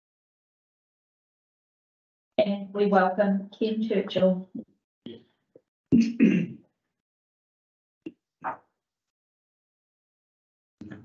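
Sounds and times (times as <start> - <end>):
person clearing throat: 5.9 - 6.6.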